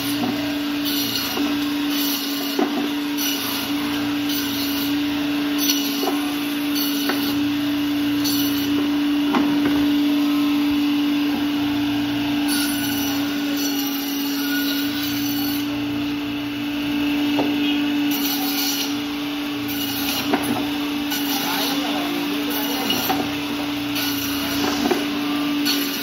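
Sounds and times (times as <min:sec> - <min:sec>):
band saw humming: 0:00.0 - 0:26.0.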